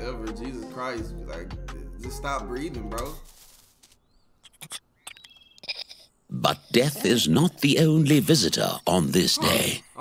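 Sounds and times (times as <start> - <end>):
faint chirps and clicks: 3.9 - 6.1.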